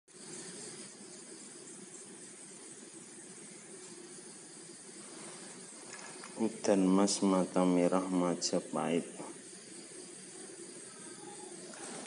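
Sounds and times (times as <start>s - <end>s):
faint background hiss: 0.1s - 12.0s.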